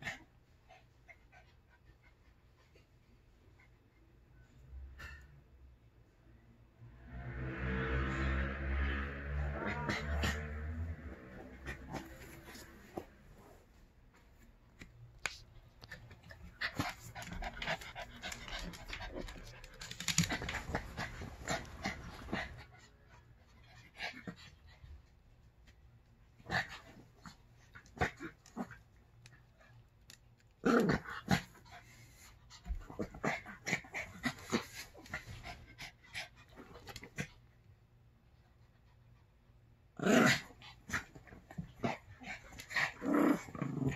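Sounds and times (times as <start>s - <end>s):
dog play-growling: 8.9s - 13.6s, 15.9s - 24.8s, 26.3s - 29.8s, 30.4s - 37.4s, 40.0s - 43.9s
dogs panting: 15.9s - 25.1s.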